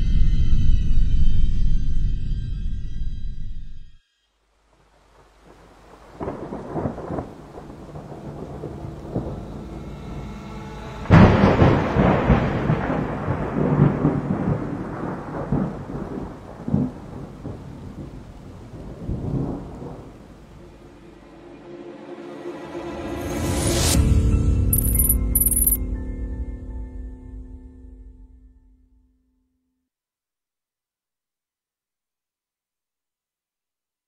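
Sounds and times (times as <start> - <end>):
thunder rumbling: 11.1 - 20.2
thunder clap: 11.4 - 18.0.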